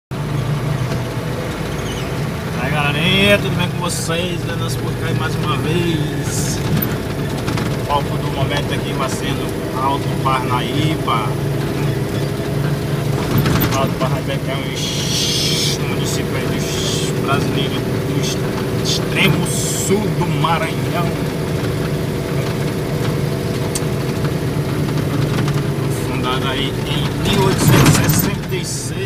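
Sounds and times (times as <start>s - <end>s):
road noise: 0.1s - 29.0s
vehicle engine hum: 0.1s - 29.0s.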